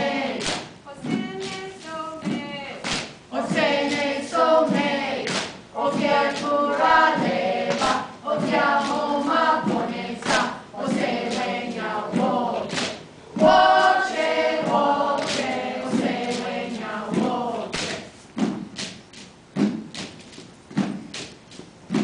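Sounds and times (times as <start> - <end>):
children and adults singing: 0.0 - 18.1.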